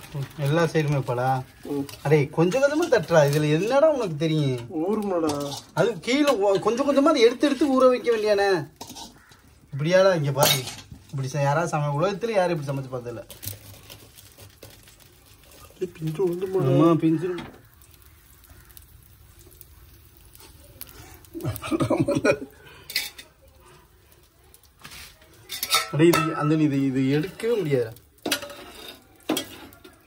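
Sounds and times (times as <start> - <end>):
metal spatula clinking on pan: 10.4 - 10.9, 22.9 - 23.3, 25.5 - 27.6, 28.2 - 30.0.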